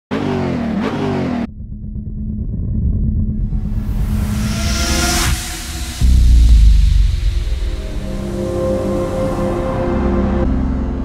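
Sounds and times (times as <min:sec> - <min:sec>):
car engine revving: 0:00.1 - 0:11.0
low rumble: 0:01.5 - 0:11.0.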